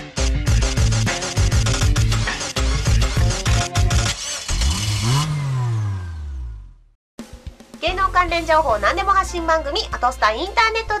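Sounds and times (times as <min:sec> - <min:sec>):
jingle music with a beat: 0:00.0 - 0:04.1.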